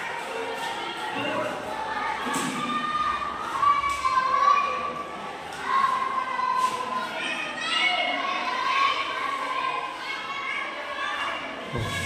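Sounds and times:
children shouting and calling: 0.0s - 12.0s.

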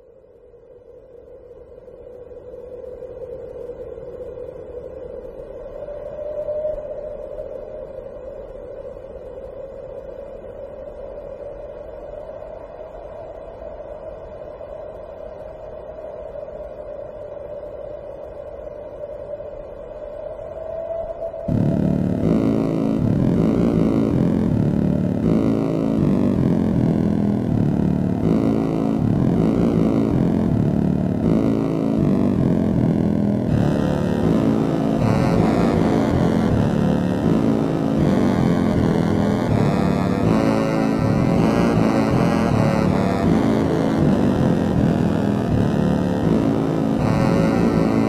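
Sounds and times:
layered synthesizer music: 21.5s - 48.0s
low buzzing drone: 21.5s - 48.0s.

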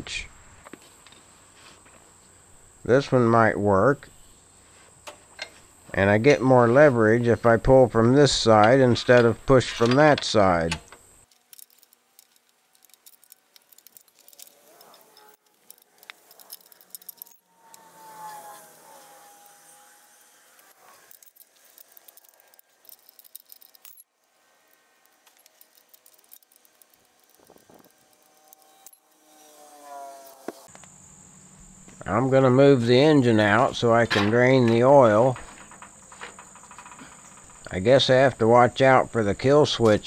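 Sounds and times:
small metal clicks and clinks: 11.3s - 18.4s, 20.6s - 29.0s
high gliding tones: 12.7s - 30.7s.

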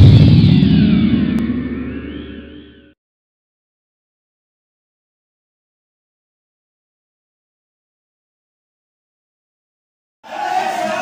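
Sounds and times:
deep rumble: 0.0s - 3.0s.

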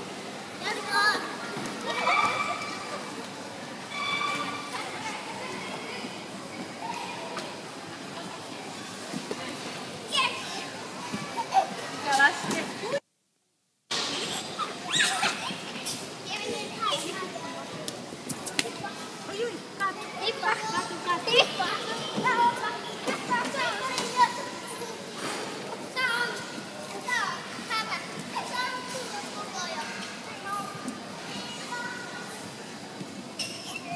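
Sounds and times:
background chatter: 0.0s - 13.1s, 13.9s - 33.9s
children's voices and shouts: 0.6s - 3.1s, 18.7s - 25.2s
children playing: 0.6s - 13.0s, 14.0s - 33.9s
children shouting and squealing: 1.8s - 3.1s, 14.3s - 15.7s.

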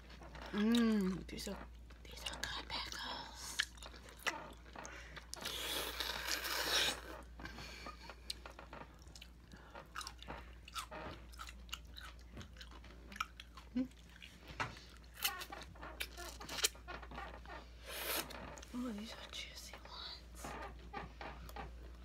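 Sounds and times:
chewing pickles with wet crunches: 9.0s - 16.8s.

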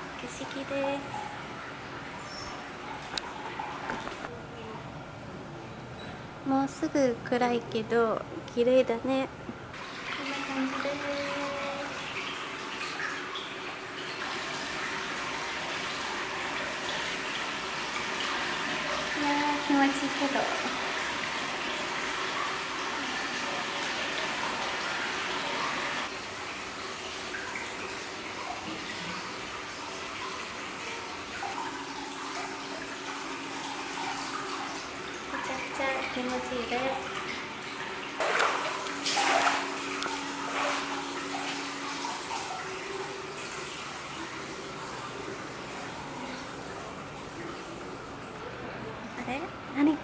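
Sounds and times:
water pouring into a bath: 9.8s - 48.2s.

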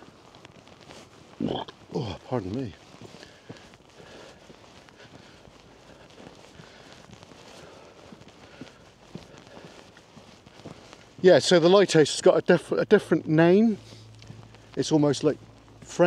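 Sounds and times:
footsteps on pavement: 0.0s - 16.0s
low outdoor hiss: 0.0s - 16.0s.

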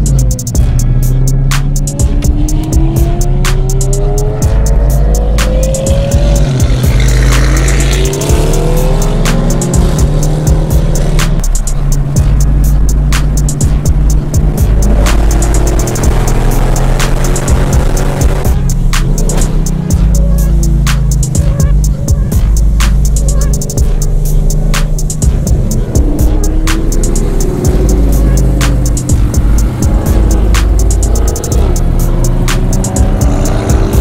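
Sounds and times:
car engine accelerating: 0.0s - 34.0s
music with heavy bass and beat: 0.0s - 34.0s.

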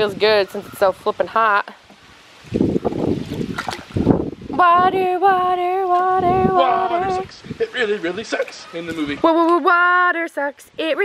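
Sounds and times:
wind rumbling on microphone: 0.0s - 8.3s
water splashing and sloshing: 1.8s - 4.6s.

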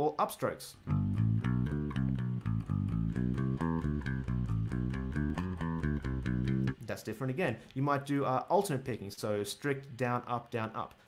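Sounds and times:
electric bass guitar picked notes: 0.8s - 6.9s.

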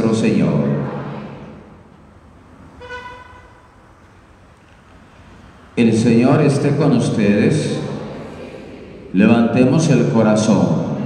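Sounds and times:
low room noise: 0.0s - 11.0s
vehicle horn toot: 2.7s - 3.8s.

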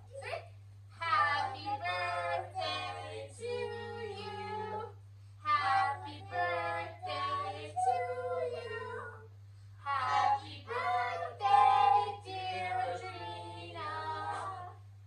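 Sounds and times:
child and woman singing: 1.0s - 14.8s.

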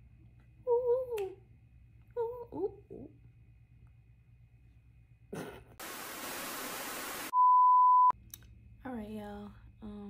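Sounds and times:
static hiss: 5.8s - 7.3s.

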